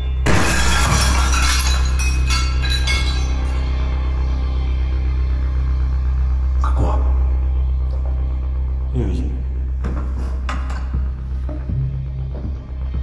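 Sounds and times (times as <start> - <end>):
low musical drone: 0.0 - 13.0
glass shattering: 0.2 - 3.7
glass pieces clinking: 0.3 - 3.6.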